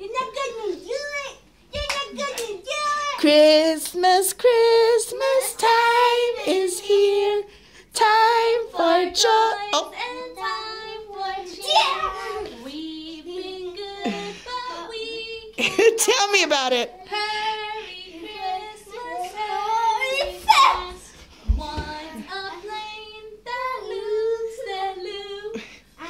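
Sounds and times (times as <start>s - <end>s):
child singing: 0.0s - 15.8s, 17.0s - 25.6s.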